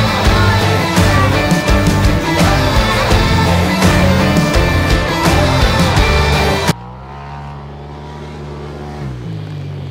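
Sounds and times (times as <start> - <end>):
small engine running steadily: 0.0 - 9.9.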